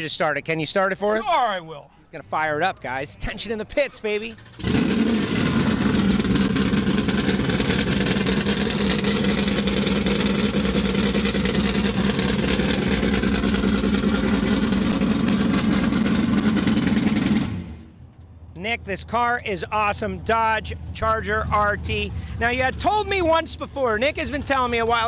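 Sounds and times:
loud car engine idling: 4.3s - 18.0s, 20.0s - 25.0s.

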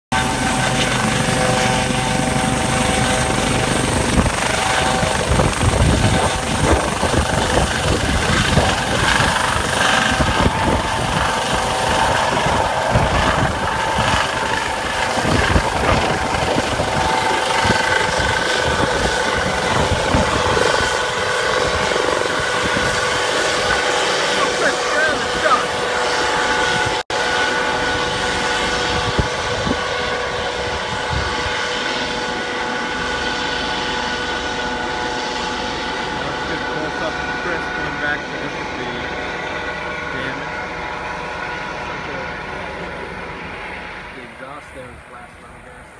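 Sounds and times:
helicopter rotor rumble: 0.1s - 45.9s
helicopter turbine whine: 0.1s - 45.9s.

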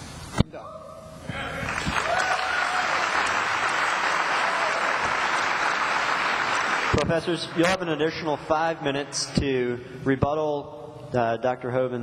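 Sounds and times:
audience applauding: 1.6s - 8.0s.

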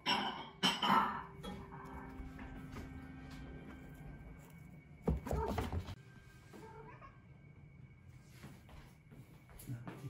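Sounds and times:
cat meowing: 6.6s - 7.3s.

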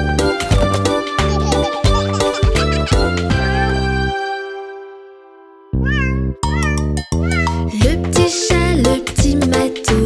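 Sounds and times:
children's background music: 0.0s - 10.0s
cartoon kitten meowing: 5.8s - 7.7s.

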